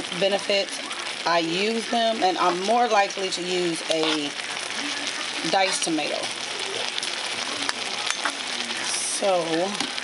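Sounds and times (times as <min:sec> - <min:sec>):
food sizzling in a hot pan: 0:00.0 - 0:10.0.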